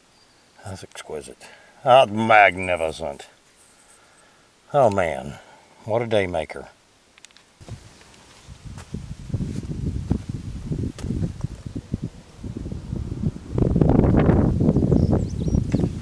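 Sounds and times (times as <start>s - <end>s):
rustling handling noise: 3.0s - 4.2s, 7.1s - 10.3s
wind buffeting microphone: 7.6s - 16.0s.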